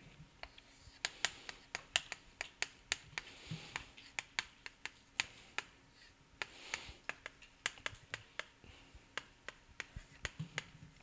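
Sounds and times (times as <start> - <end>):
chalk clicking on chalkboard: 0.4 - 5.8, 6.4 - 11.0
chalk scratching strokes: 0.4 - 10.7.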